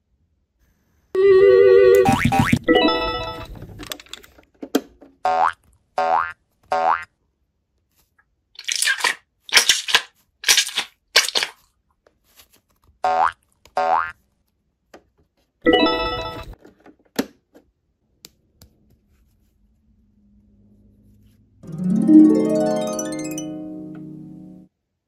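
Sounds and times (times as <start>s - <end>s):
cartoon boing effects: 2.0s - 2.7s.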